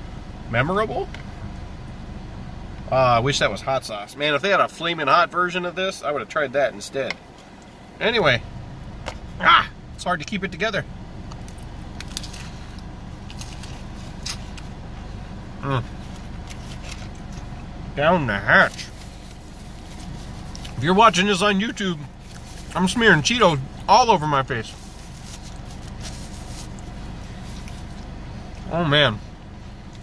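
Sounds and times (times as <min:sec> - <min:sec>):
low car hum: 0:00.0 - 0:30.0
crunching and chewing food: 0:11.2 - 0:17.6, 0:18.6 - 0:20.8, 0:21.7 - 0:23.1, 0:24.6 - 0:28.7
paper napkin rustling: 0:18.6 - 0:20.8, 0:22.2 - 0:23.2, 0:24.6 - 0:28.0.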